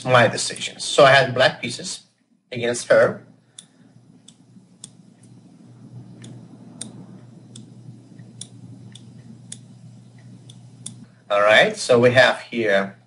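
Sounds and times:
faint low hum: 0.0s - 13.0s
computer mouse clicking: 3.5s - 11.1s.

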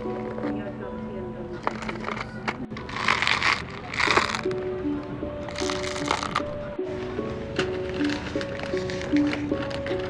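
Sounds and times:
background music: 0.0s - 10.0s
hard sweets clattering: 1.5s - 4.6s, 5.4s - 6.5s, 7.6s - 10.0s.

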